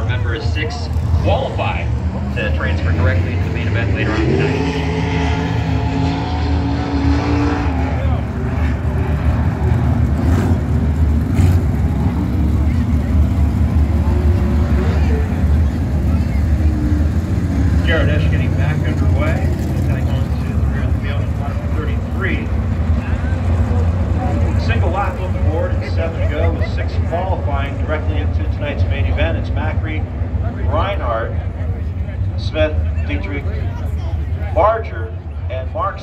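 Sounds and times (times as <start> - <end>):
crowd voices: 0.0 - 36.0
race car engines droning: 0.0 - 36.0.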